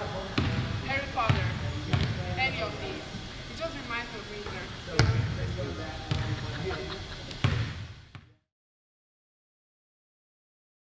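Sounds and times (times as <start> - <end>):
basketball bouncing on hardwood floor: 1.3 - 2.2, 5.0 - 5.2, 7.4 - 8.3.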